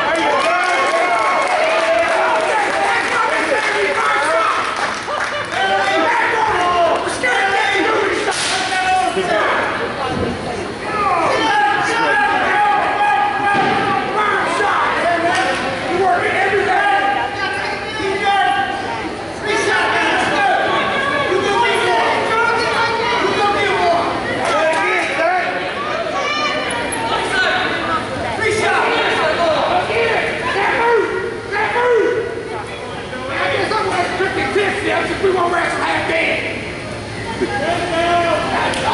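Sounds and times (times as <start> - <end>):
spectators shouting: 0.0 - 9.8, 10.8 - 32.5
voices calling out in a gym: 0.0 - 38.9.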